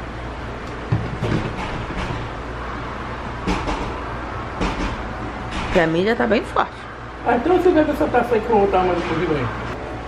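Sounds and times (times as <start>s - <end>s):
knocks and clunks: 0.9s - 2.4s, 3.4s - 4.0s, 4.6s - 5.8s.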